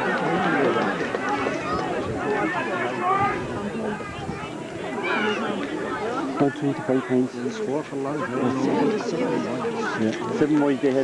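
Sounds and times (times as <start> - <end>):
indistinct chatter of spectators: 0.0 - 11.0.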